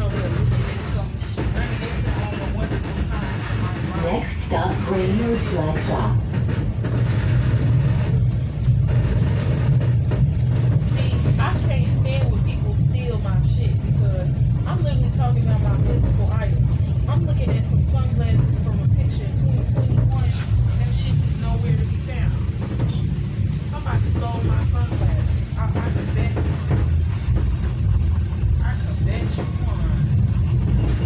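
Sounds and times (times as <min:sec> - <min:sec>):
indistinct passenger voices: 0:00.0 - 0:31.0
train car rumbling: 0:00.0 - 0:31.0.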